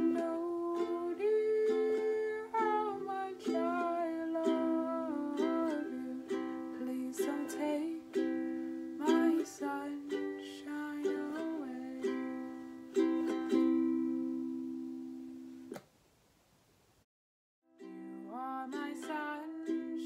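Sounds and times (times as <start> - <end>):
woman singing: 0.0 - 12.5, 17.8 - 20.0
ukulele strumming: 0.0 - 15.8, 17.8 - 20.0.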